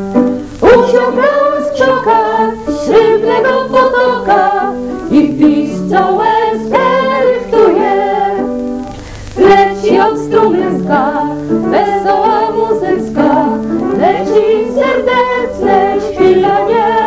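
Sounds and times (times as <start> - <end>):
piano accompaniment: 0.0 - 17.0
women singing in harmony: 0.6 - 8.6, 9.4 - 17.0.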